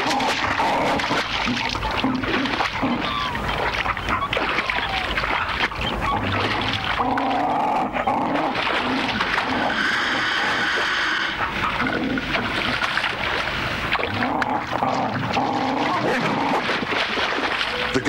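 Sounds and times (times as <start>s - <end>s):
dingoes snarling and growling: 0.0s - 3.4s, 6.0s - 12.5s, 13.9s - 16.9s
splashing in shallow water: 0.0s - 18.0s.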